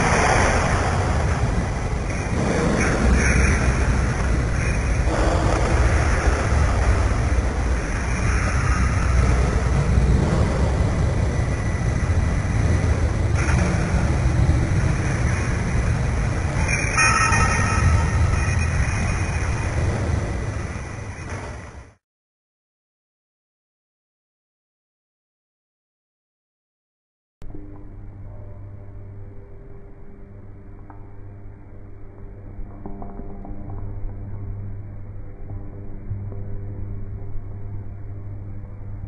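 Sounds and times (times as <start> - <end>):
loud deep rumbling: 0.0 - 22.0
cluster of tones: 1.4 - 21.4.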